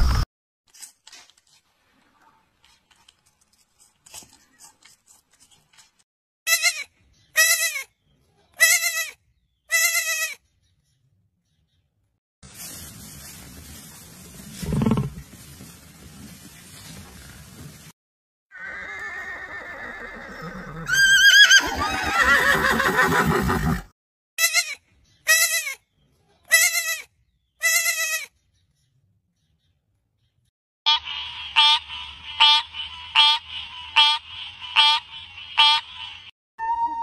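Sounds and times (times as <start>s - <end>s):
young goat bleating: 8.6s - 10.4s, 24.4s - 25.8s, 26.5s - 28.3s
horse whinnying: 18.6s - 23.9s.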